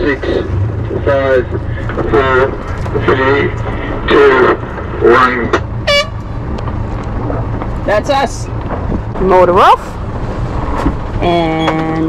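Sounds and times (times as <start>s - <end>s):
boat motor rumbling: 0.0s - 12.0s.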